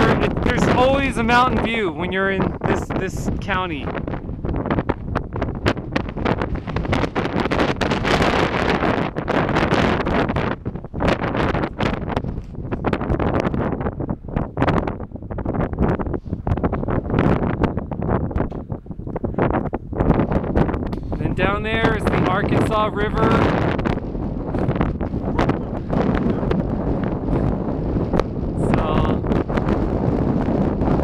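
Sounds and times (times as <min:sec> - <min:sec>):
wind buffeting microphone: 0:00.0 - 0:31.0.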